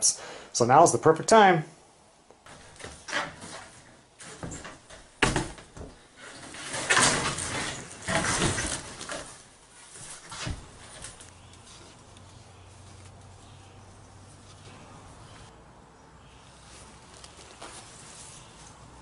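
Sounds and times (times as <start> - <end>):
wire-mesh traps rattling and scraping: 6.2 - 9.6.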